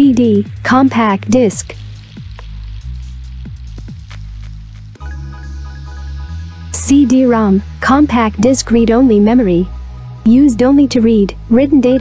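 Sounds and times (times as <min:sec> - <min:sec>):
low sustained bass music: 0:00.0 - 0:12.0.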